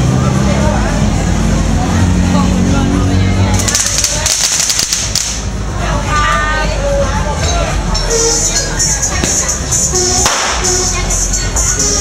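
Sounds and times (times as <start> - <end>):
firecrackers crackling: 3.5 - 5.7, 9.2 - 11.0.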